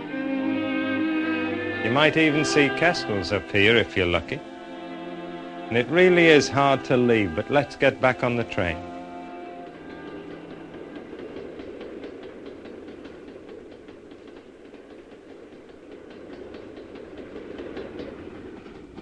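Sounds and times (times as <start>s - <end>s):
background music: 0.0s - 13.2s
train engine and wheel rumble: 0.0s - 19.0s
wheels clicking over rail joints: 5.8s - 19.0s.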